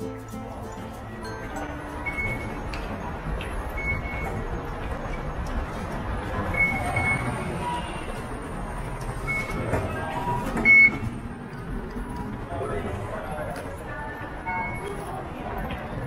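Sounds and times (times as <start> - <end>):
ticket gate beeps: 1.1 - 4.6, 6.5 - 8.0, 9.2 - 11.1, 14.5 - 15.0.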